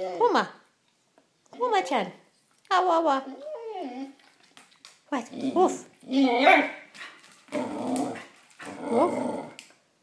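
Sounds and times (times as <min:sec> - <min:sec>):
dog growling: 0:05.2 - 0:09.7.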